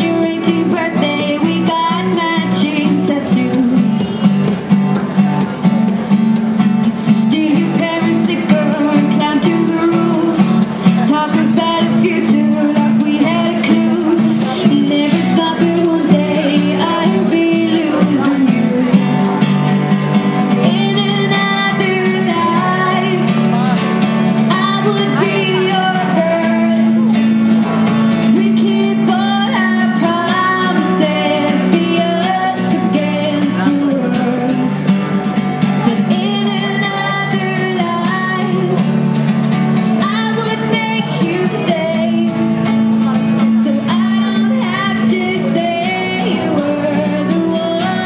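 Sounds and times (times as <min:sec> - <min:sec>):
woman singing: 0:00.0 - 0:04.2, 0:06.8 - 0:19.4, 0:20.5 - 0:23.5, 0:24.3 - 0:27.2, 0:28.2 - 0:35.0, 0:35.8 - 0:39.1, 0:39.8 - 0:42.6, 0:43.4 - 0:48.0
strummed acoustic guitar: 0:00.0 - 0:48.0.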